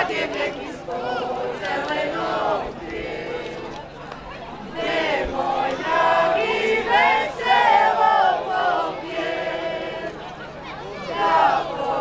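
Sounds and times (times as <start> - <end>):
folk ensemble singing: 0.0 - 12.0.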